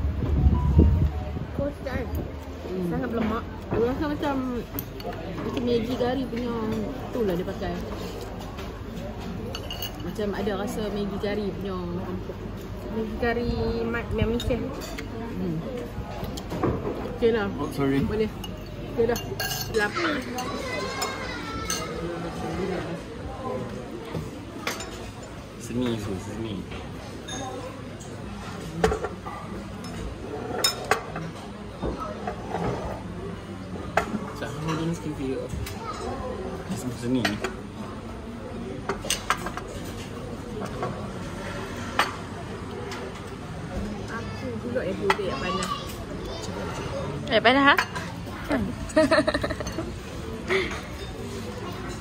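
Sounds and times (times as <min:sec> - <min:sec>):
murmur of voices: 0:00.0 - 0:52.0
cutlery clinking on dishes: 0:07.9 - 0:10.2, 0:17.6 - 0:22.1, 0:24.6 - 0:26.1, 0:27.2 - 0:32.9, 0:35.6 - 0:37.6, 0:38.8 - 0:41.0
cutlery clinking on ceramic bowls: 0:09.4 - 0:10.2, 0:18.4 - 0:22.0.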